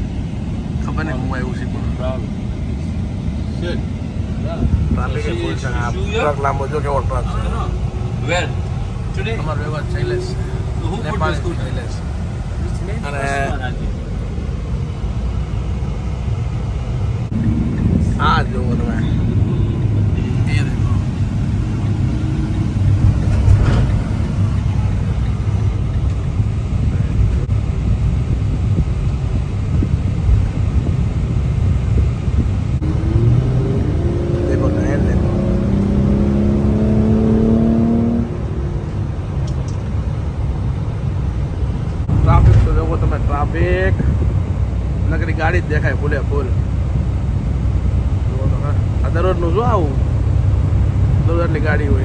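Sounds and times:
road and engine rumble: 0.0s - 52.0s
rising pitched drone: 1.7s - 27.7s, 32.2s - 40.4s.

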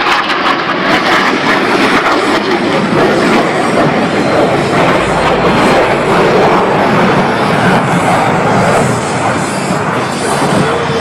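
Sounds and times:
jet engines roaring: 0.0s - 11.0s.

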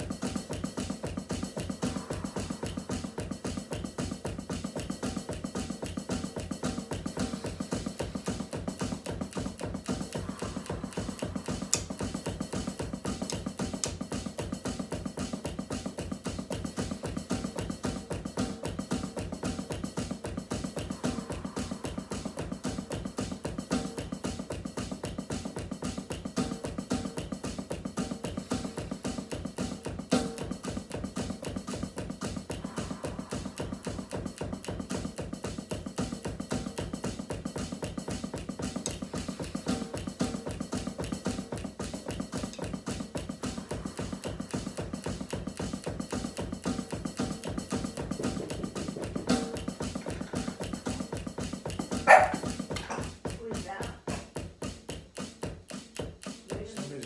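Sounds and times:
drum kit fast groove: 0.0s - 57.0s
dog barking: 52.0s - 53.1s.

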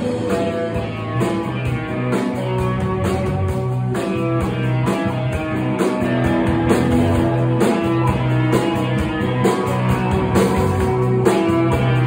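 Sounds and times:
drum beat: 0.0s - 12.0s
electric guitar chords: 0.0s - 12.0s.

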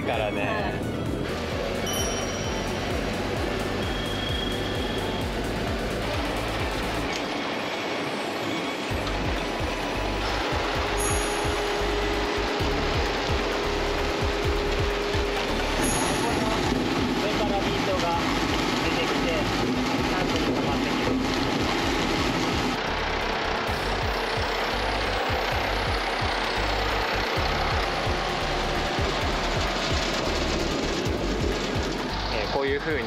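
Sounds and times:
background music: 0.0s - 33.0s
farm machinery rumble: 8.9s - 33.0s.

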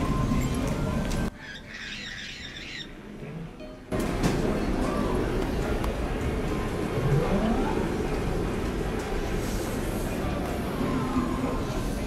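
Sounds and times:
casino crowd din: 2.4s - 12.0s.

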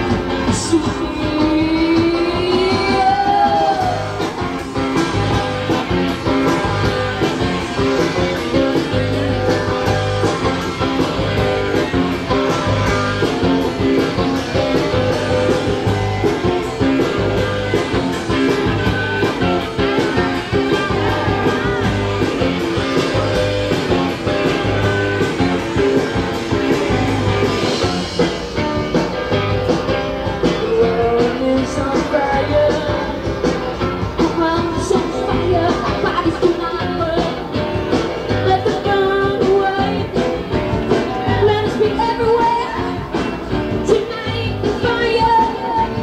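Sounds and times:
rock band playing live: 0.0s - 46.0s.

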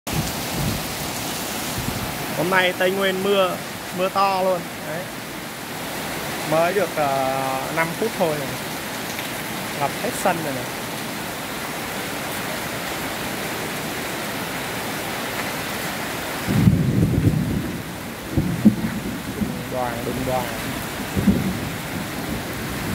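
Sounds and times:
heavy rain on flooded road: 0.1s - 22.9s.

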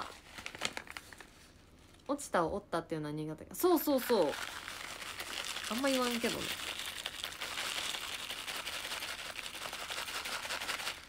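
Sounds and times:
foil sachet crinkling: 0.0s - 2.0s, 3.9s - 11.0s.

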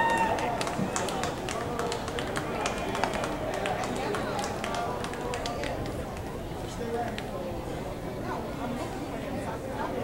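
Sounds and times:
sharp claps and knocks: 0.0s - 6.3s
indistinct crowd voices: 0.0s - 10.0s.

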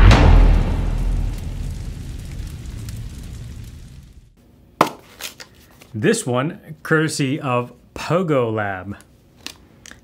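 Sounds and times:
deep cinematic boom rumble: 0.0s - 4.4s.

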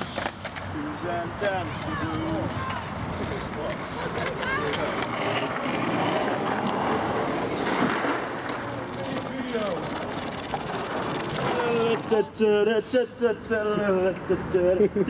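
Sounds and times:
busy background noise: 0.0s - 15.0s.

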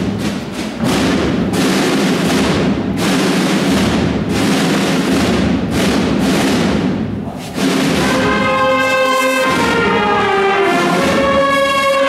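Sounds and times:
marching snare and bass drum rolls: 0.0s - 12.0s.

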